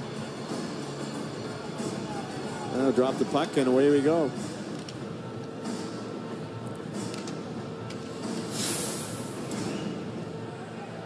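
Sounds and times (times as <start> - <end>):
arena crowd noise: 0.0 - 8.2, 9.8 - 11.0
hissing whoosh: 8.5 - 9.9.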